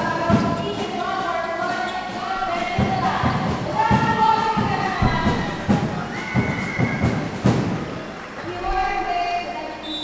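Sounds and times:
music echoing in hall: 0.0s - 9.8s
basketball bouncing on hardwood: 2.7s - 7.7s.

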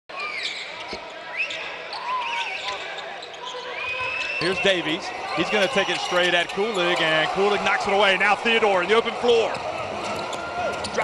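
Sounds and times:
crowd hubbub: 0.1s - 11.0s
sneakers squeaking on court: 0.2s - 1.2s, 2.0s - 4.6s, 9.5s - 11.0s.

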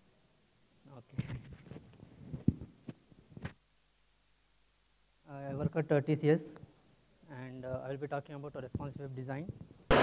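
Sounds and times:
microphone handling thumps and rustles: 1.1s - 3.6s.

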